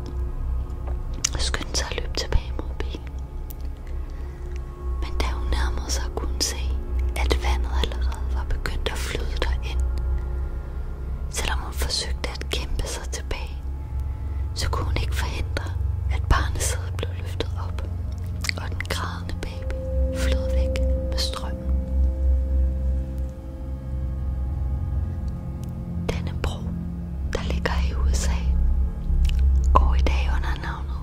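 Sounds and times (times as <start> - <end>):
low droning music: 0.0 - 31.0
person whispering: 1.2 - 3.1, 5.0 - 9.8, 14.6 - 21.8, 26.1 - 26.7, 27.3 - 28.6, 29.7 - 31.0.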